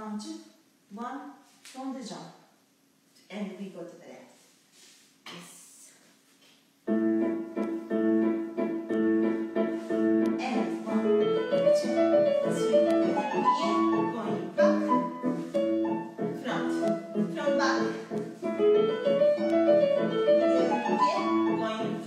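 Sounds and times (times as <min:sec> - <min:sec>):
piano music: 0:06.9 - 0:22.0.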